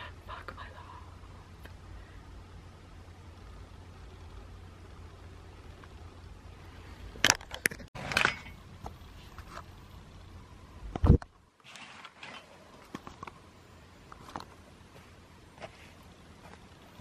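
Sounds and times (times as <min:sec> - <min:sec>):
low hum: 0:00.0 - 0:11.6.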